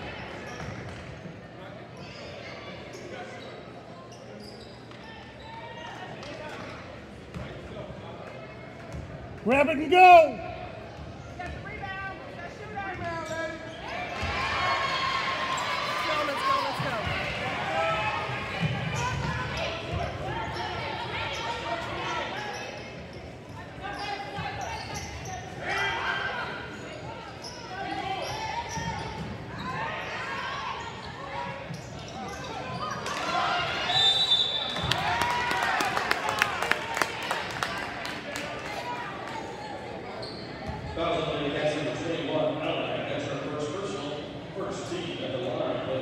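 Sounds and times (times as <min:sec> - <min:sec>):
spectators chattering: 0:00.0 - 0:46.0
referee's whistle: 0:33.8 - 0:34.9.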